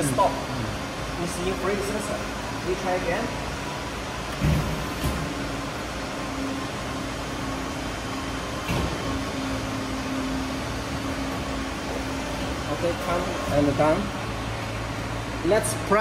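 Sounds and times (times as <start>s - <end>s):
hydraulic pump humming and whining: 0.0s - 16.0s.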